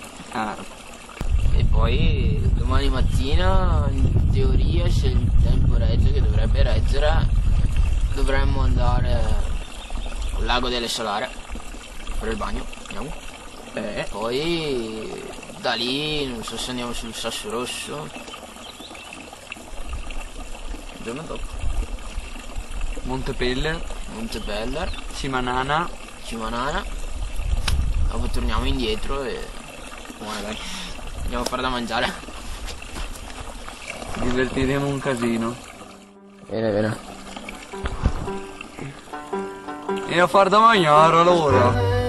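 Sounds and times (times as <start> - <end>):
deep rumbling: 1.2 - 9.6
background music held notes: 35.8 - 42.0.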